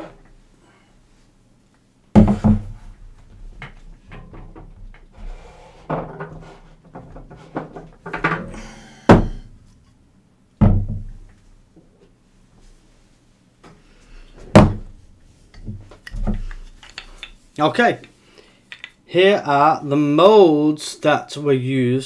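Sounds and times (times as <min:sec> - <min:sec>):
objects knocking and rattling: 0:02.1 - 0:09.5, 0:14.4 - 0:17.4.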